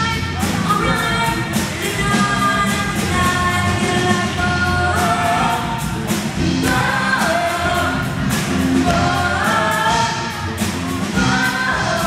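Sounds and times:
drum kit beat: 0.0s - 12.0s
girls singing pop song: 0.0s - 12.0s
live band playing: 0.0s - 12.0s.

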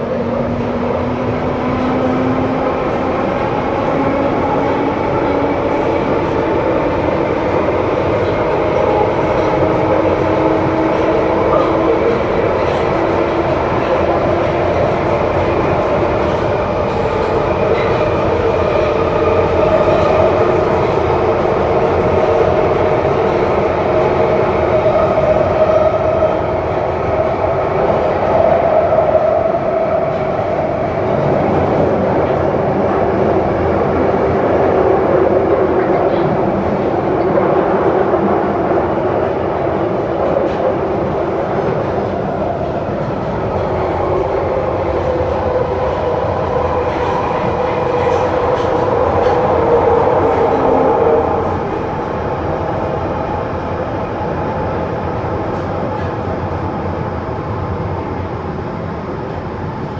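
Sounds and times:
train rolling through tunnel: 0.0s - 59.9s.

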